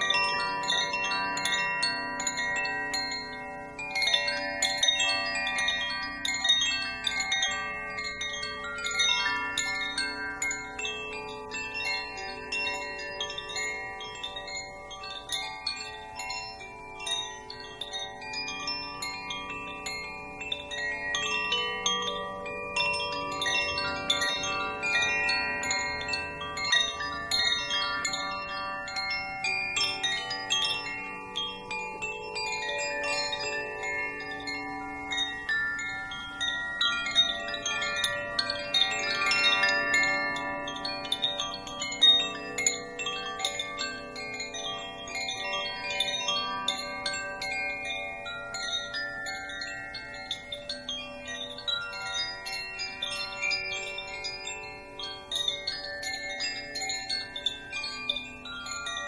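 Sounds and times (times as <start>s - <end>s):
wind chimes jingling: 0.0s - 59.0s.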